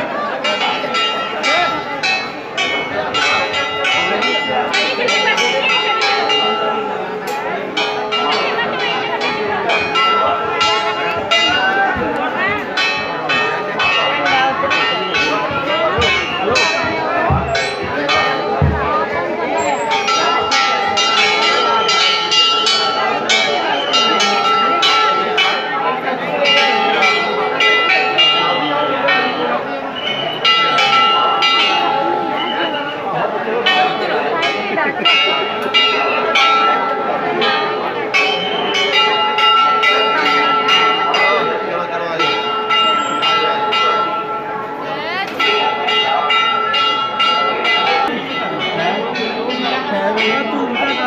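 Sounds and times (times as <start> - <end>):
temple bells ringing: 0.0 - 51.0.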